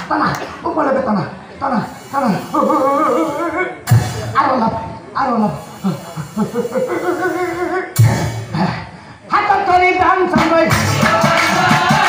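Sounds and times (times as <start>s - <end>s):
sharp drum stroke: 3.9s - 4.4s.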